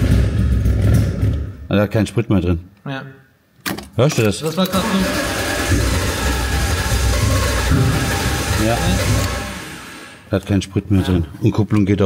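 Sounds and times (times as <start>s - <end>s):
car engine running: 4.9s - 10.2s.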